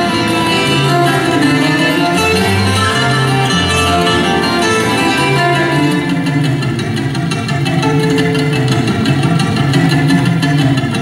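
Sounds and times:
plucked strings and acoustic guitars: 0:00.0 - 0:11.0.

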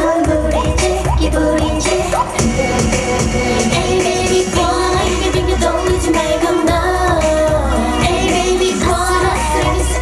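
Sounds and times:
pop dance song with woman singing: 0:00.0 - 0:10.0
heavy steady beat: 0:00.2 - 0:09.9.

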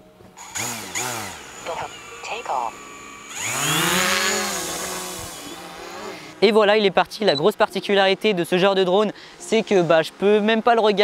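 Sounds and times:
drone propellers whirring: 0:00.4 - 0:06.4.

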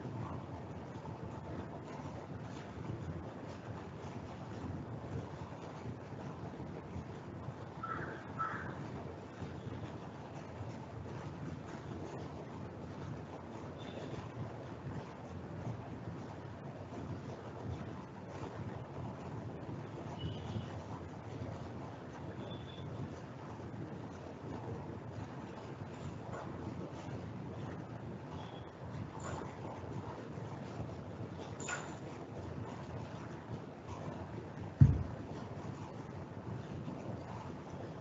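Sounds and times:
microphone hiss: 0:00.0 - 0:38.0
room rumble: 0:00.0 - 0:38.0.

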